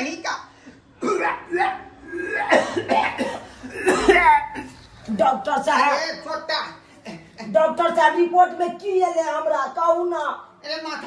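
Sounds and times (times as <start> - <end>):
man coughing loudly: 1.0 - 4.8
straining throat sounds: 1.0 - 5.0.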